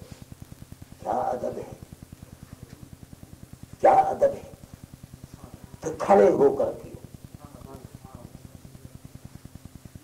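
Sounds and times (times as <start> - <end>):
man lecturing: 3.8 - 4.6, 5.8 - 7.0.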